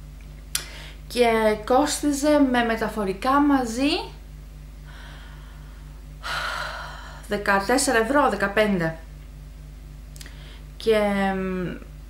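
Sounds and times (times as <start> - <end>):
low electrical hum: 0.0 - 12.0
woman's breathy in-breath: 4.9 - 7.3.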